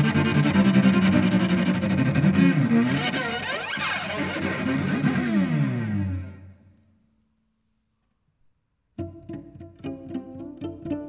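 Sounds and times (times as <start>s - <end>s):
bowed cello with sliding pitch: 0.0s - 6.6s, 9.0s - 11.0s.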